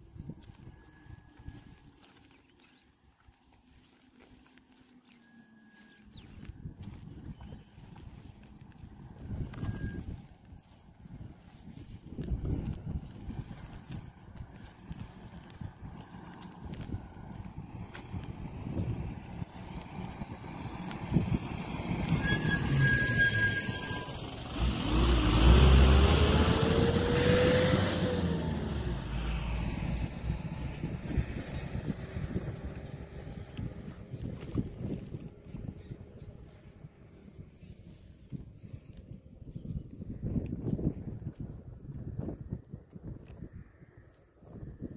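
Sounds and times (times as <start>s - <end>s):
vehicle driving past: 12.7s - 37.9s
brief high steady tone: 22.2s - 24.2s
low rumbling noise: 24.2s - 39.5s.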